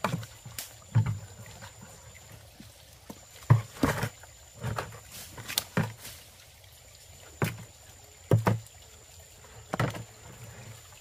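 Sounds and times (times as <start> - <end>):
plastic jerrycan knocking on rocks: 3.4 - 5.0, 8.3 - 8.7, 9.7 - 10.2.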